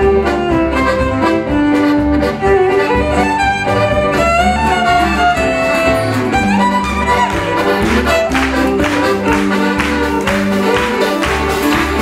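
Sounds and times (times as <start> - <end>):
accordion: 0.0 - 12.0
double bass beat: 0.0 - 12.0
fiddle melody: 0.0 - 12.0
strummed acoustic guitars: 7.2 - 12.0.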